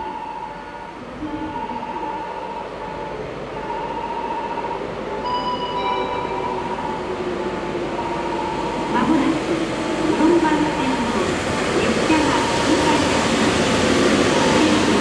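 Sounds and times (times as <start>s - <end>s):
electric train approaching: 0.0s - 15.0s.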